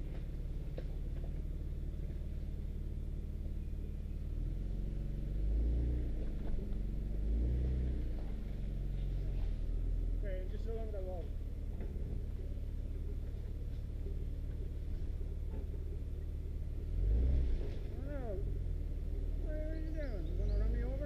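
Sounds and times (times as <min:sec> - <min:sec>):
engine running at low revs: 0:00.0 - 0:21.0.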